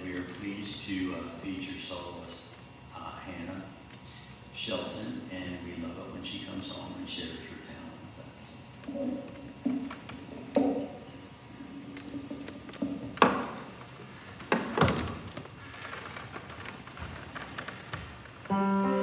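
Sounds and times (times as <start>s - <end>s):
upright piano chords: 18.5s - 19.0s.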